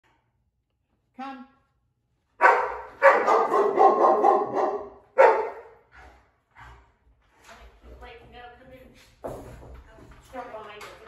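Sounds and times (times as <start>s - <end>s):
dog barking: 2.4s - 5.8s.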